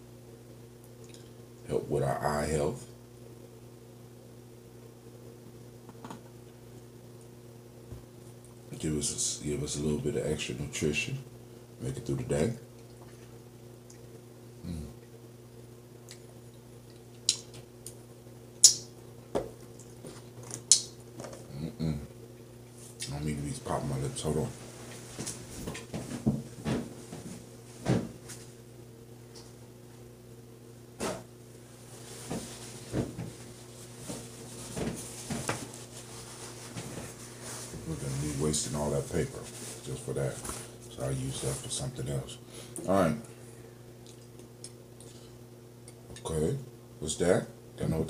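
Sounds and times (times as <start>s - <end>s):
steady low hum: 0.0s - 48.0s
lips smacking and popping: 20.7s - 20.9s.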